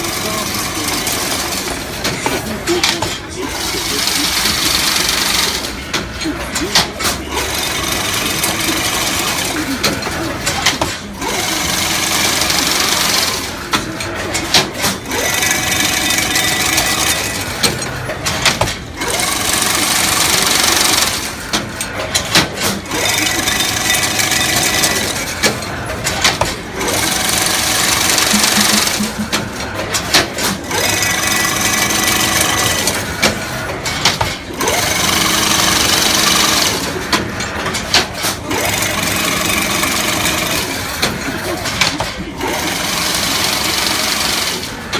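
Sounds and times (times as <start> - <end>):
fence weaving machine whirring: 0.0 - 44.9
machine clicks and knocks: 4.7 - 11.2, 12.2 - 42.6.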